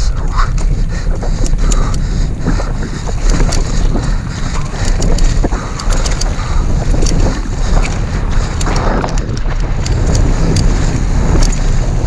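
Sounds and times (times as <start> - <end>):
bike clicks and rattles: 0.0 - 12.0
wind and tyres rumbling: 0.0 - 12.0.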